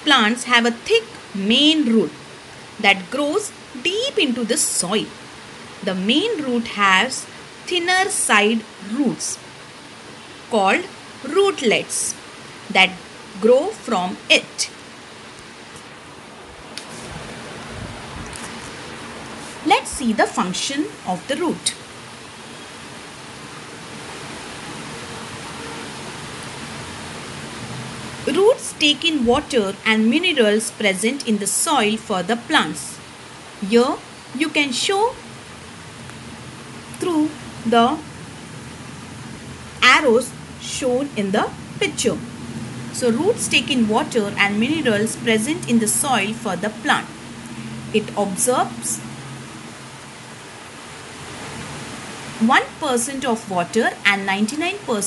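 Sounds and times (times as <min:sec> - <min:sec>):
faint low hum: 0:00.0 - 0:55.0
steady background hiss: 0:00.0 - 0:55.0.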